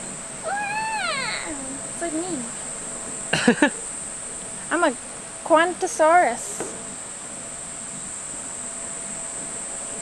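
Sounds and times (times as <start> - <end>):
insects droning: 0.0 - 10.0
high squealing call: 0.4 - 1.8.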